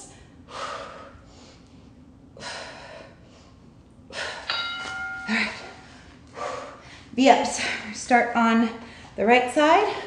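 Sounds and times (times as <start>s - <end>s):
woman breathing hard: 0.0s - 4.6s, 5.2s - 8.0s.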